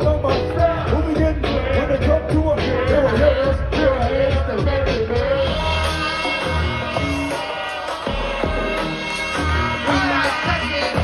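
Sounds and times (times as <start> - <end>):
deep bass: 0.0 - 7.3
loud live hip-hop beat: 0.0 - 11.0.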